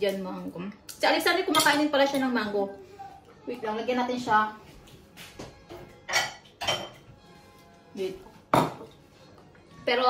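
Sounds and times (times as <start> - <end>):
glass bowl clinking: 6.1 - 7.0.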